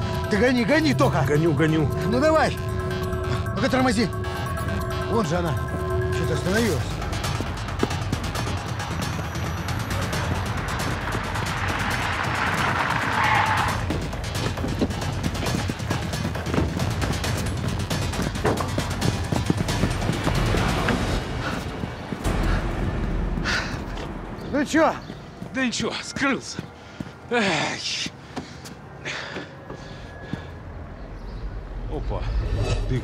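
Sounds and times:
film score music: 0.0 - 33.0
car engine noise: 6.9 - 23.0.

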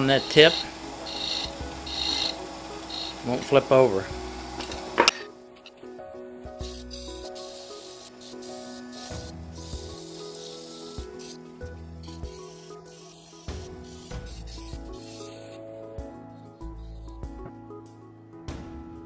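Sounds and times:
sandpaper hissing on spinning wood: 0.0 - 4.6, 6.6 - 15.7
background music: 0.0 - 19.0.

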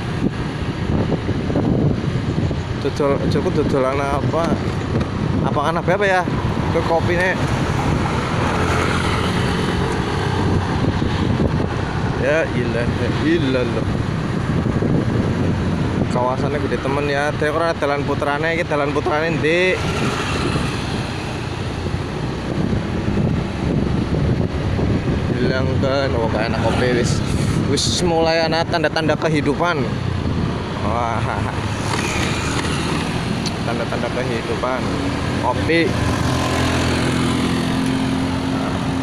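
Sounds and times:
road noise: 0.0 - 39.0
wind rushing over microphone: 0.0 - 39.0
motorcycle engine: 30.0 - 39.0.

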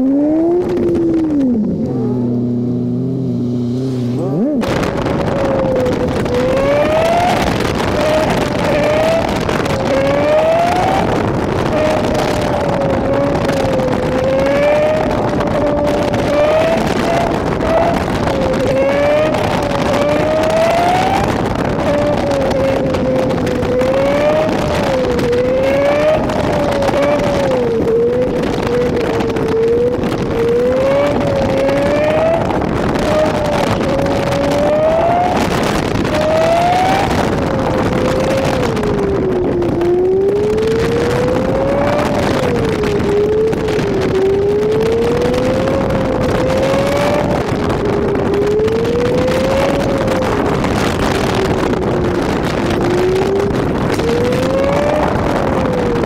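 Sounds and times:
car engine accelerating: 0.0 - 56.0
wind and road noise: 0.0 - 56.0.

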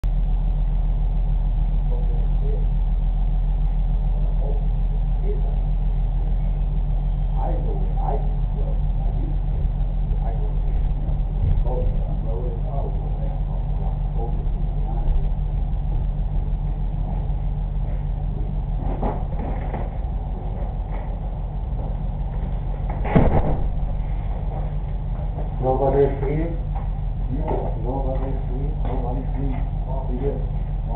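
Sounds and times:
steady low hum: 0.0 - 30.9
muffled men's voices talking: 1.7 - 2.8, 4.0 - 19.2, 25.3 - 30.9.

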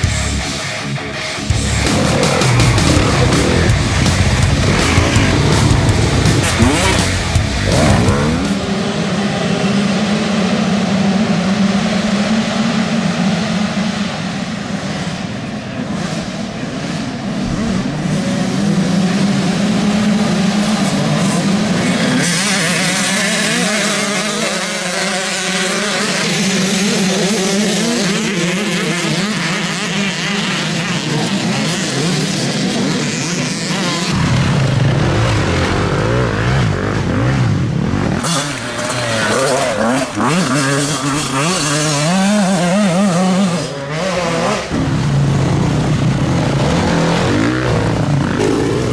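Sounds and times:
dirt bike engines revving: 0.0 - 48.9.

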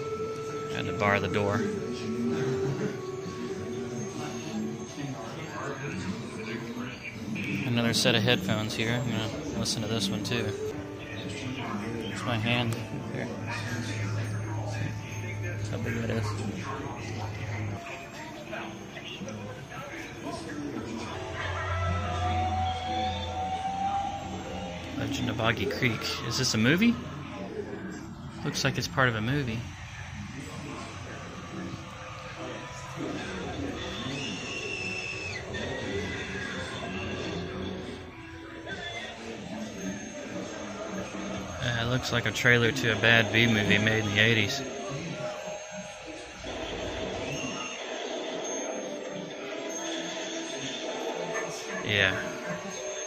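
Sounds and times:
steady rushing noise from tv: 0.0 - 53.0
lower cry: 21.1 - 25.3.

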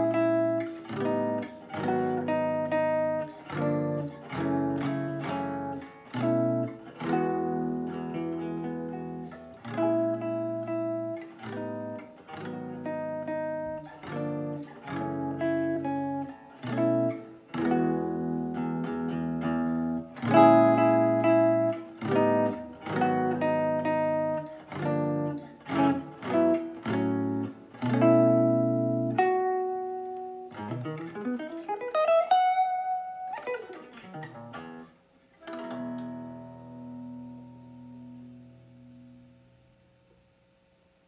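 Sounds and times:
electric guitar chord melody: 0.0 - 40.2.

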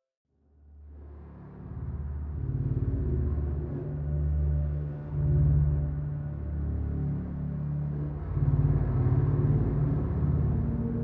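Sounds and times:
low sustained clarinet texture: 2.9 - 11.0.

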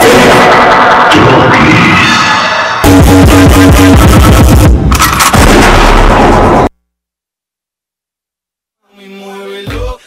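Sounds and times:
loud dance music: 0.0 - 4.9
heavy low booming: 2.8 - 6.7
sharp shot-like sound effect hits: 4.9 - 6.7.

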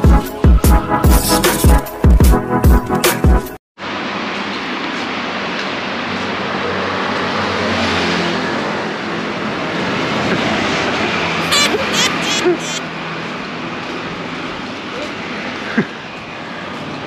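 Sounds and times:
cars passing: 3.8 - 17.0
motor scooters passing: 5.0 - 17.0.

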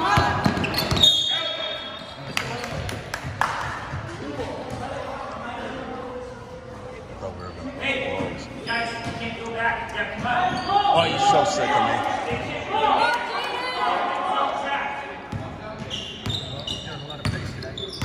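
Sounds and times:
sneakers squeaking: 0.0 - 2.9, 7.4 - 9.4, 10.0 - 11.3, 15.3 - 18.0
voices and shouts echoing: 0.0 - 18.0.

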